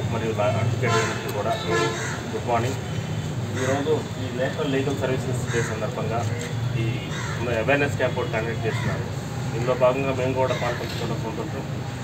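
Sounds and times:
man speaking: 0.0s - 2.9s, 3.6s - 11.8s
crows cawing: 0.9s - 2.5s, 3.5s - 4.0s, 5.4s - 6.2s, 7.0s - 7.7s, 8.7s - 9.1s, 10.4s - 11.2s.

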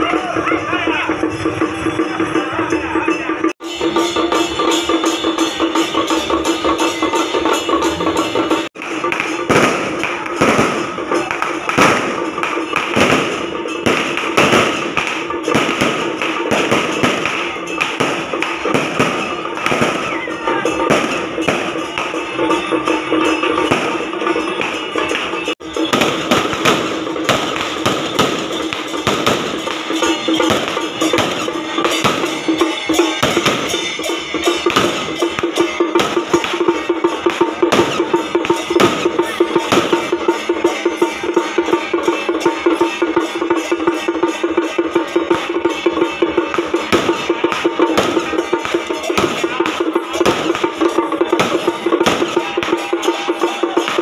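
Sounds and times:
procession music with drums: 0.0s - 54.0s
firecrackers crackling: 3.7s - 54.0s.

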